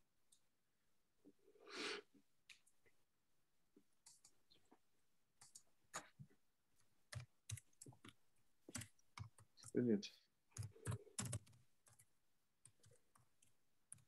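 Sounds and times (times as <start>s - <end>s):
computer keyboard typing: 4.0s - 4.4s, 5.4s - 6.1s, 7.1s - 9.8s, 10.5s - 14.0s.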